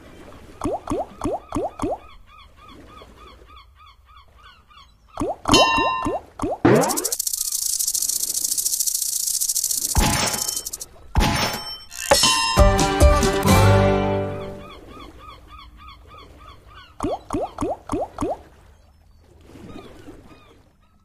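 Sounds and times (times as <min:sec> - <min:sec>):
faint chirping: 0:06.8 - 0:10.8
loud fast rattling hiss: 0:06.8 - 0:10.8.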